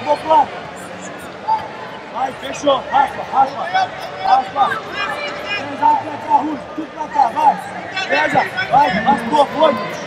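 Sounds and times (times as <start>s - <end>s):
arena background noise: 0.0s - 10.0s.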